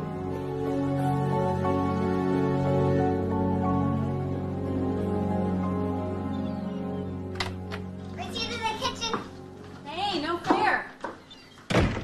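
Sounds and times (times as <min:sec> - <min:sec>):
soft film score: 0:00.0 - 0:12.0
child's high-pitched voice: 0:08.2 - 0:09.3.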